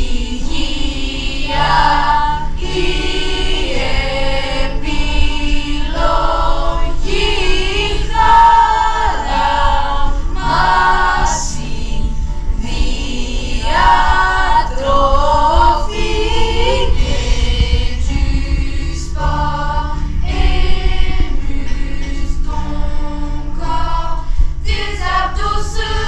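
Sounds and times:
choir singing held notes: 0.0 - 26.0.

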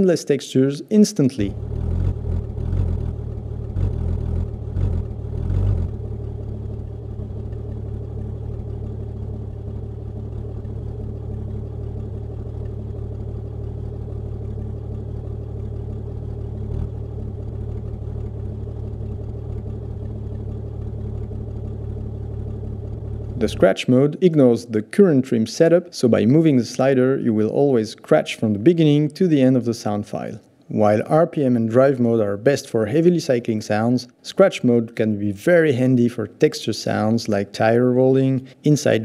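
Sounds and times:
car engine drone: 1.4 - 39.0.

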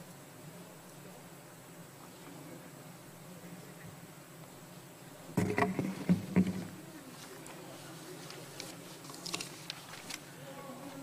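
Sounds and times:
low steady hum: 0.0 - 11.0
knocks on wooden lectern: 5.4 - 6.7.

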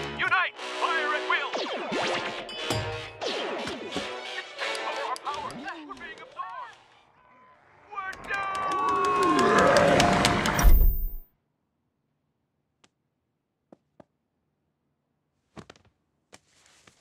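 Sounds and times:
cartoon soundtrack music: 0.0 - 6.0.

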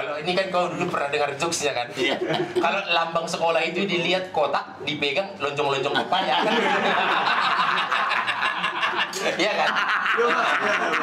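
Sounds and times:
people talking: 0.0 - 7.8, 8.4 - 11.0
chuckling laughter: 6.4 - 11.0.

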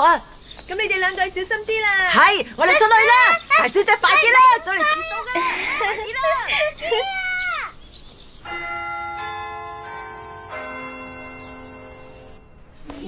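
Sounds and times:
school chime bell notes: 8.5 - 12.8.

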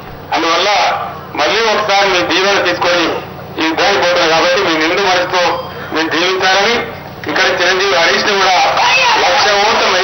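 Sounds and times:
man speaking into microphone: 0.3 - 10.0.

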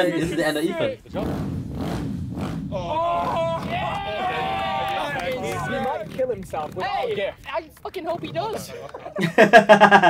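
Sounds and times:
dirt bike engine running: 1.1 - 9.4
people shouting: 2.7 - 7.4.

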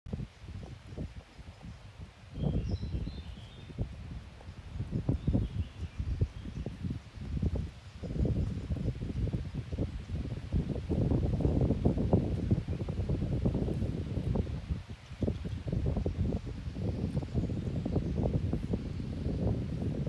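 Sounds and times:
wind buffeting microphone: 0.1 - 20.0.

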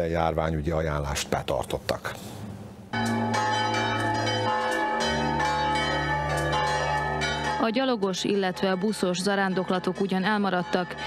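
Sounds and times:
church bells ringing: 2.9 - 11.0.

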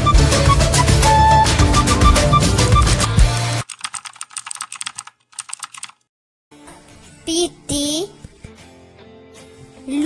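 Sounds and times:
background music: 0.0 - 3.6, 6.5 - 10.0
keyboard typing clicks: 3.6 - 6.0.

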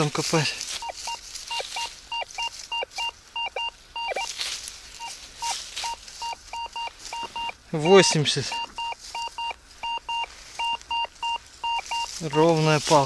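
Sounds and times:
metal detector beeps: 0.8 - 4.4, 5.0 - 13.0.

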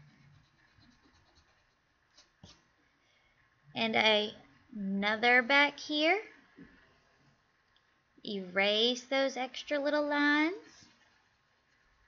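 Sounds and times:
eraser rubbing on paper: 0.0 - 2.6.

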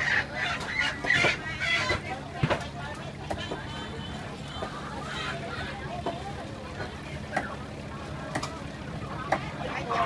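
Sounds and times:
market background noise: 0.0 - 10.0.

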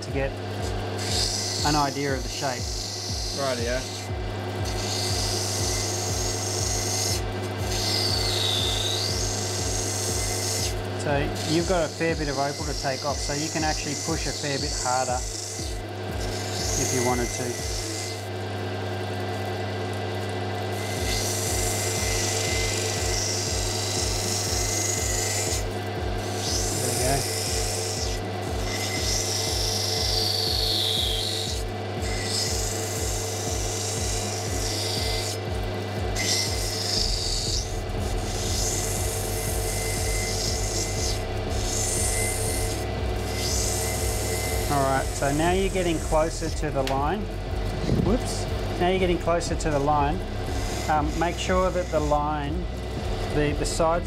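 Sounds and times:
grinding machine hum: 0.0 - 54.0
stone grinding wet scraping hiss: 4.6 - 15.3.

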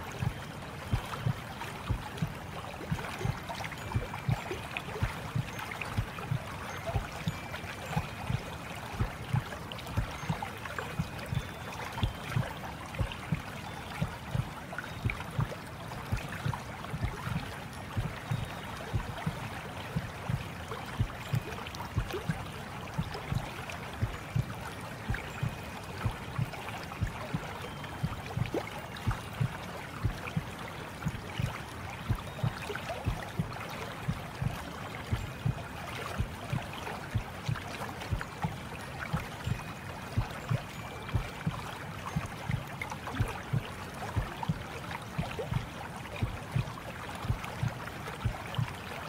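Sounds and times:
water running and lapping: 0.0 - 49.0.

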